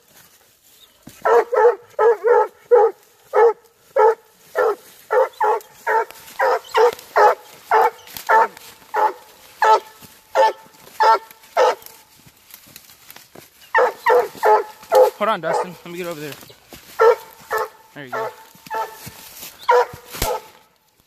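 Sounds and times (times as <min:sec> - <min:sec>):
hound barking: 0:01.2 - 0:12.1, 0:13.7 - 0:16.0, 0:16.9 - 0:20.6.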